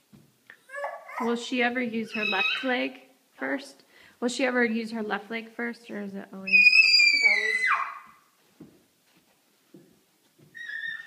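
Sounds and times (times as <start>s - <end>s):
toddler squealing: 0.7s - 1.3s, 2.0s - 2.8s, 6.5s - 8.2s, 10.5s - 11.0s.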